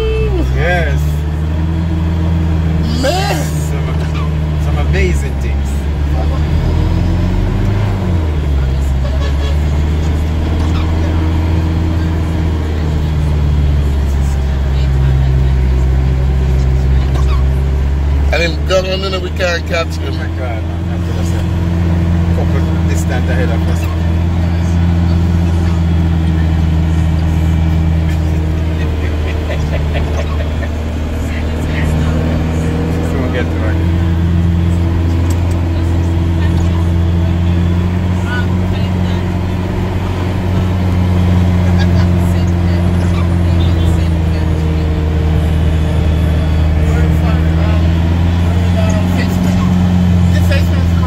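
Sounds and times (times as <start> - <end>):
car engine drone from cabin: 0.0 - 51.0.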